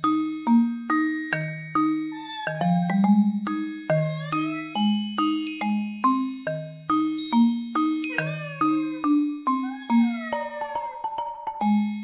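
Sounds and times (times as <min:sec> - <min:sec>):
bell-like melody: 0:00.0 - 0:12.0.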